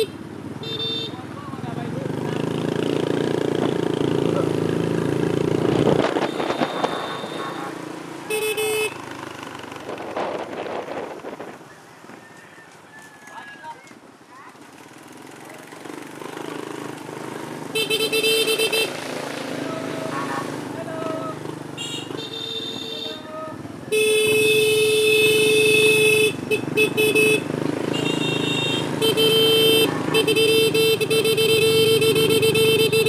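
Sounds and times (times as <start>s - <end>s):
motorbike horn honking: 0.0s - 1.3s, 6.1s - 7.7s, 8.3s - 9.0s, 17.8s - 19.0s, 21.8s - 33.0s
motorcycle engine running: 0.0s - 11.4s, 14.6s - 33.0s.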